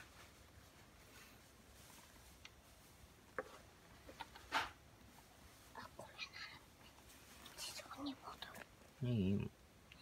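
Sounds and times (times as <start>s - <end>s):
faint whispering: 5.6s - 8.7s.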